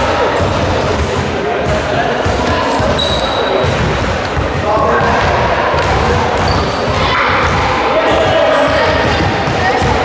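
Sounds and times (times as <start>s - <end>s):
reverberant gym murmur: 0.0s - 10.0s
basketball bouncing on wooden floor: 0.4s - 7.8s.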